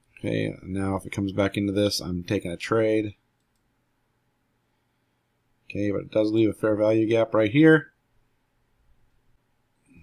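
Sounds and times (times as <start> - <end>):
computer mouse click: 3.4 - 3.7.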